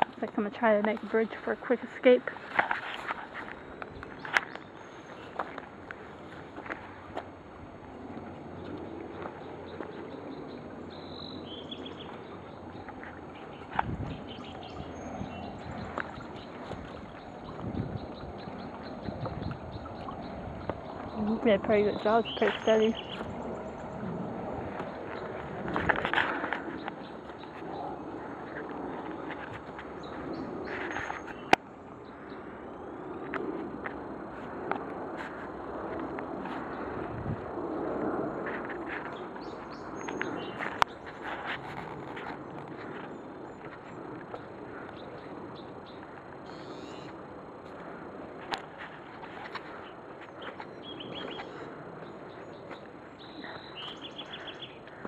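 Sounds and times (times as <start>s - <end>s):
birds chirping: 0.0s - 33.6s, 38.7s - 55.0s
rustling through undergrowth: 24.8s - 31.6s.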